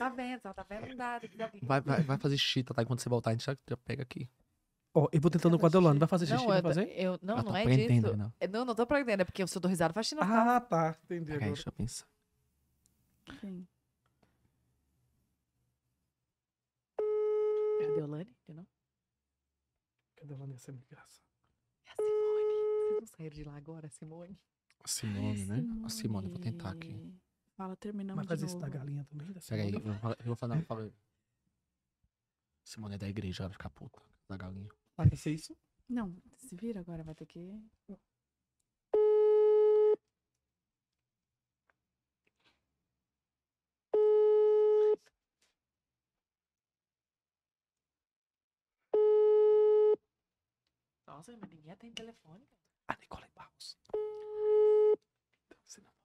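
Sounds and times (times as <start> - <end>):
person speaking: 0.8 - 3.1, 5.0 - 8.3, 11.1 - 12.0, 24.9 - 27.2, 28.1 - 30.9.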